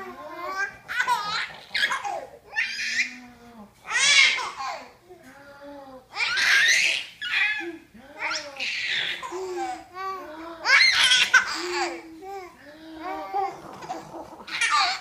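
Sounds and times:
baby laughing: 0.5 - 3.1, 13.2 - 15.0.

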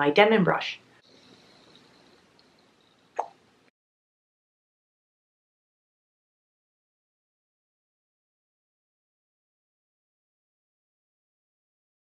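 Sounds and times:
faint room hiss: 0.0 - 3.7.

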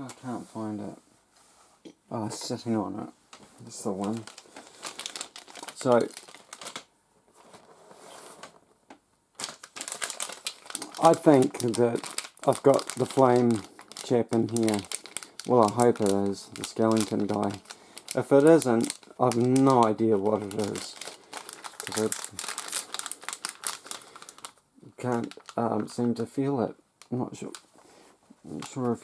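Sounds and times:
plastic bag crinkling: 3.4 - 8.6, 9.3 - 26.2, 27.0 - 29.0.

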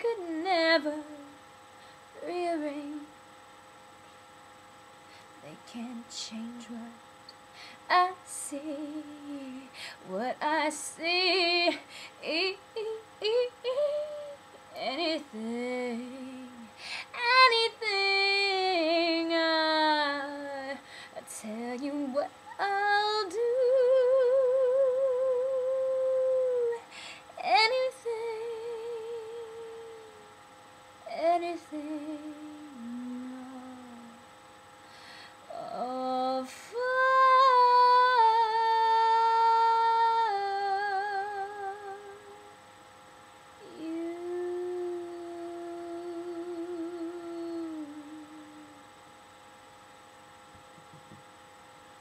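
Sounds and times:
woman singing unaccompanied: 0.0 - 1.4, 2.2 - 3.2, 5.4 - 7.1, 7.8 - 30.4, 31.0 - 34.3, 35.5 - 42.6, 43.6 - 49.0
faint electrical hum: 0.0 - 52.0
woman humming: 11.2 - 17.4, 21.4 - 30.4, 31.1 - 34.2, 43.6 - 49.0.

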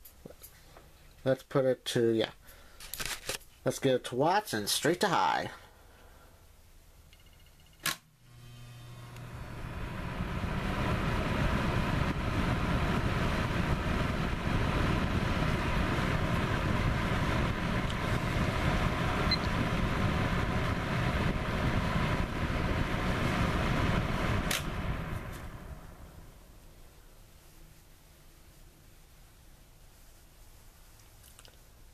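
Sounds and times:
fan heater running: 8.2 - 27.6
heater switch click: 24.4 - 24.8.

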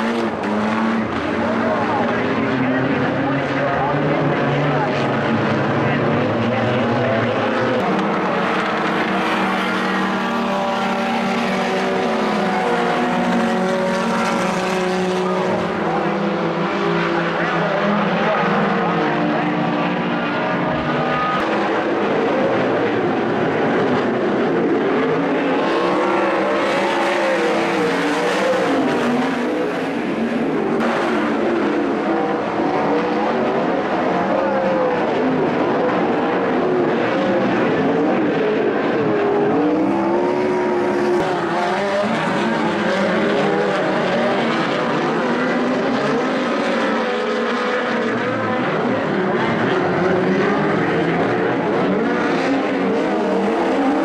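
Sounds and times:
race car engines: 0.0 - 54.0.

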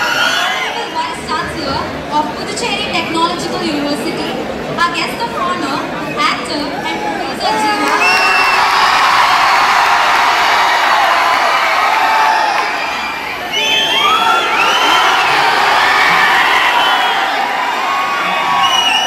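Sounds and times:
crowd cheering and shouting: 0.0 - 1.3, 6.0 - 19.0
high whoops: 6.8 - 19.0.

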